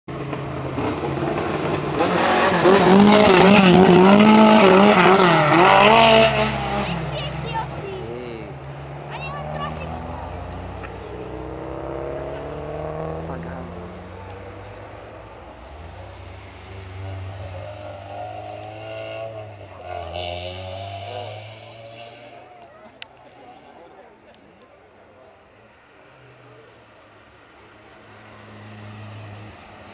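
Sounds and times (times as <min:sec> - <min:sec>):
race car engines revving: 0:00.1 - 0:29.9.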